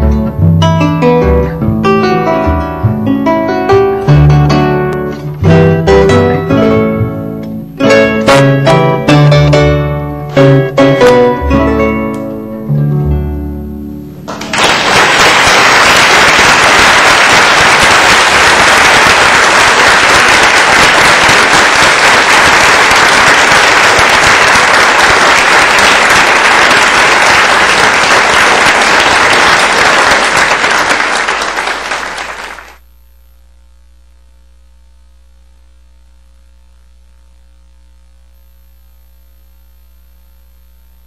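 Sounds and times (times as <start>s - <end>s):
audience applauding: 14.3s - 32.8s.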